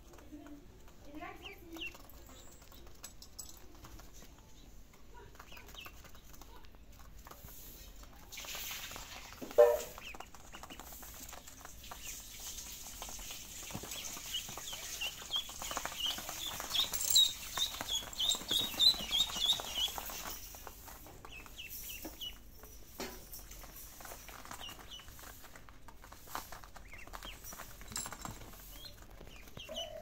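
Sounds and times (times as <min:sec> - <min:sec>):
ducklings peeping: 0:01.0 - 0:03.0, 0:03.8 - 0:27.8, 0:28.4 - 0:30.0.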